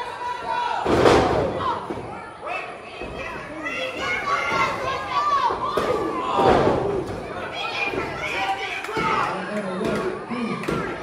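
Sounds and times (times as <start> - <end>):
crowd shouting and chatter: 0.0 - 11.0.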